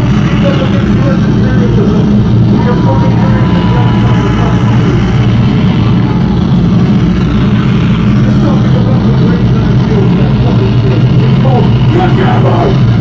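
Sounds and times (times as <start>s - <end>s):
distorted guitar and bass drone: 0.0s - 13.0s.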